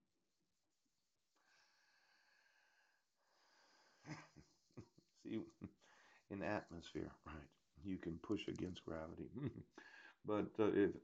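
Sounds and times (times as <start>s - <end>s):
man speaking a word: 5.3s - 5.7s, 6.3s - 9.6s.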